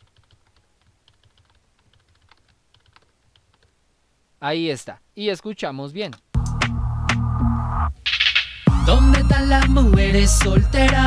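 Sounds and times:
faint rapid keyboard taps: 0:00.0 - 0:03.8.

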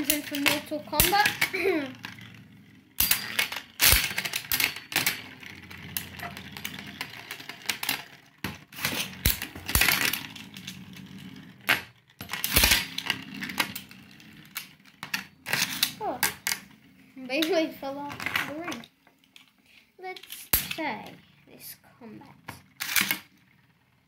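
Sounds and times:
spinning tops whirring: 0:00.0 - 0:21.7, 0:22.3 - 0:24.0
metallic clacks of tops clashing: 0:20.1 - 0:21.0.

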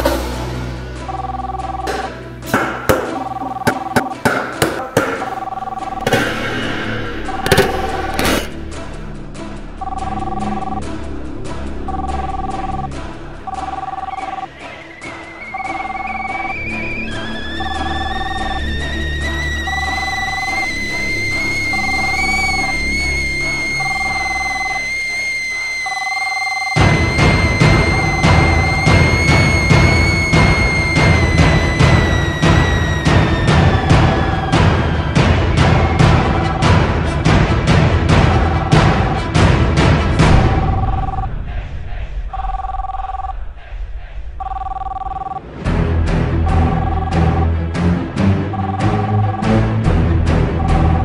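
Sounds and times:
background music: 0:00.0 - 0:51.0
phone ringing: 0:01.0 - 0:02.2, 0:02.9 - 0:06.3, 0:07.2 - 0:08.5, 0:09.8 - 0:10.9, 0:11.8 - 0:32.3, 0:38.3 - 0:39.2, 0:40.4 - 0:41.3, 0:42.4 - 0:43.3, 0:44.4 - 0:45.4, 0:46.5 - 0:47.4, 0:48.5 - 0:49.6, 0:50.6 - 0:51.0
telephone two-tone ring: 0:01.1 - 0:02.2, 0:03.0 - 0:04.2, 0:05.1 - 0:06.2, 0:09.8 - 0:10.8, 0:11.9 - 0:12.9, 0:13.5 - 0:14.5, 0:25.8 - 0:26.8, 0:44.4 - 0:45.4, 0:48.5 - 0:49.5
kettle whistling: 0:14.4 - 0:36.8
low rumble: 0:38.2 - 0:47.7.

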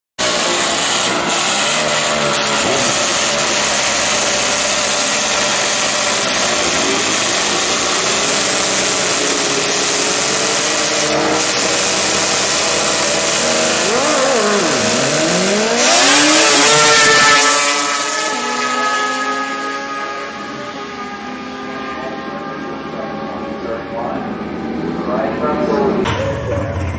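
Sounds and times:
motorcycle engines revving: 0:00.2 - 0:26.9.

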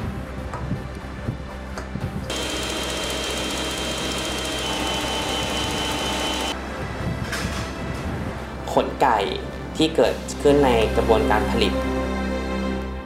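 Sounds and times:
stand mixer motor whine: 0:02.3 - 0:06.6.

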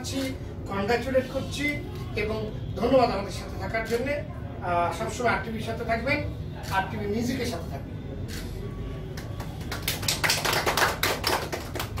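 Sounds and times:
people applauding: 0:09.1 - 0:12.0.

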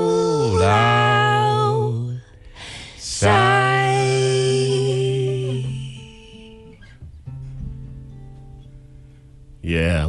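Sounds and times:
soft guitar chord: 0:00.0 - 0:10.0.

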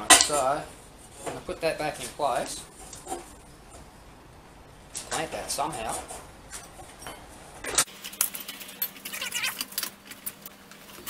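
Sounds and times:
metallic clinks and rattles: 0:06.5 - 0:10.4.

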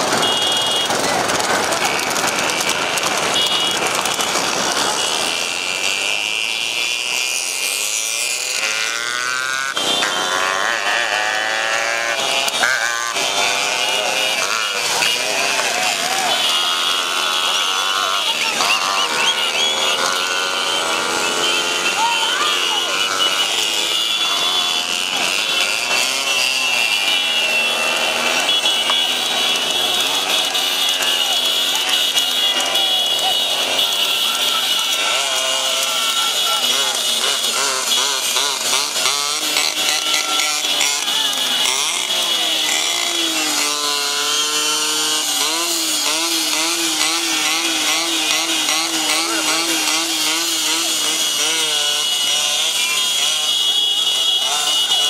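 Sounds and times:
motorcycle engines running: 0:00.0 - 0:55.0.

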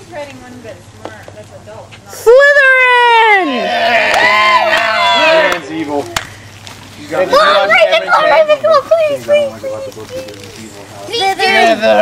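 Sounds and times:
people calling out: 0:02.1 - 0:05.7, 0:07.0 - 0:12.0.

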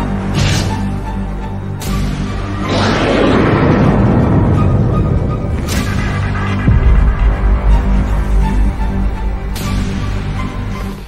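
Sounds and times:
deep rumbling boom: 0:02.6 - 0:09.6.

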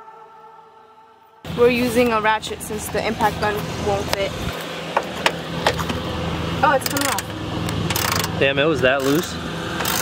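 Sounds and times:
ratchet wrench clicks: 0:06.8 - 0:07.2, 0:07.9 - 0:08.3, 0:09.0 - 0:10.0.

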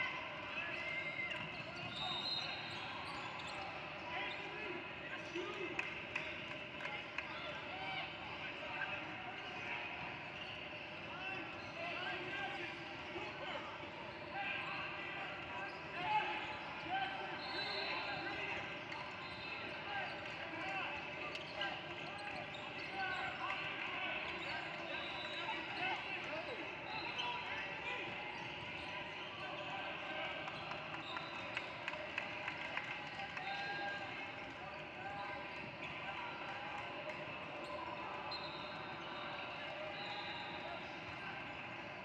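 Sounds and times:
indistinct players and spectators: 0:00.0 - 0:42.0
sneaker squeaks: 0:00.9 - 0:04.5, 0:21.2 - 0:23.4, 0:24.4 - 0:29.7, 0:30.6 - 0:31.7, 0:37.2 - 0:41.6.

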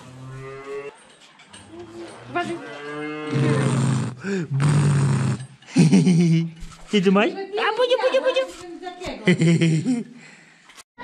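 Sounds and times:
cattle mooing: 0:00.0 - 0:00.9, 0:01.8 - 0:05.5.

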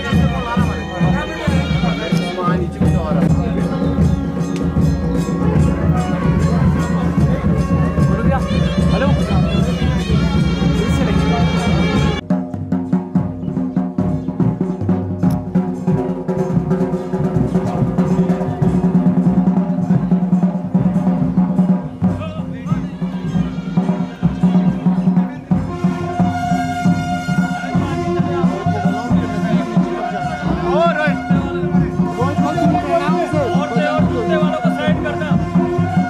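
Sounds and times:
held wind instrument tones: 0:00.0 - 0:12.2, 0:22.4 - 0:36.0
drums beating: 0:00.0 - 0:36.0.

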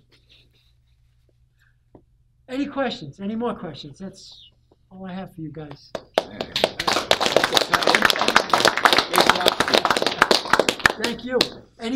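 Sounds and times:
audience applauding: 0:06.2 - 0:11.6.

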